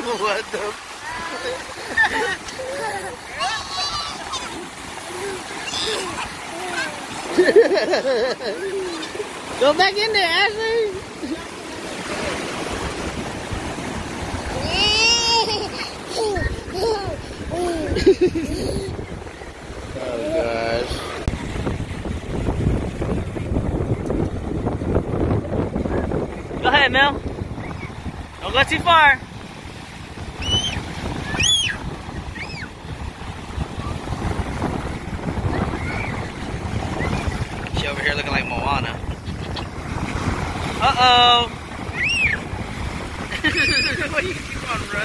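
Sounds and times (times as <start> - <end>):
ocean surf washing: 0.0 - 45.0
wind buffeting microphone: 0.8 - 45.0
person laughing: 1.1 - 4.3, 7.2 - 9.3, 15.0 - 19.0, 43.3 - 44.4.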